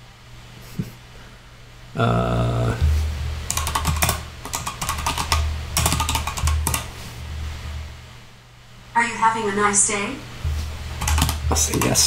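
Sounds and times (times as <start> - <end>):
typing on computer keyboard: 3.5 - 6.9, 11.0 - 12.0.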